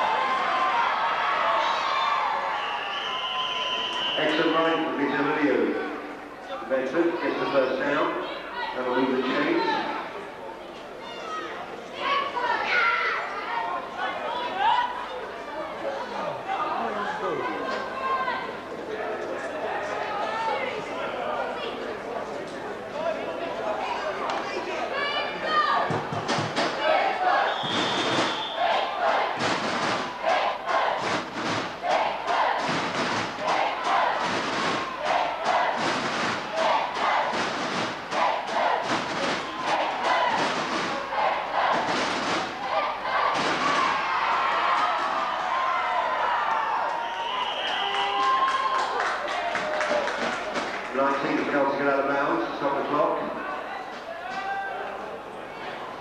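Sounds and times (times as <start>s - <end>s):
people shouting and cheering: 0.0s - 22.1s, 23.0s - 56.0s
short high whistle: 2.6s - 4.6s, 27.4s - 28.8s, 47.0s - 48.2s
sharp claps or thuds: 29.4s - 30.2s, 31.0s - 41.0s, 41.7s - 42.6s.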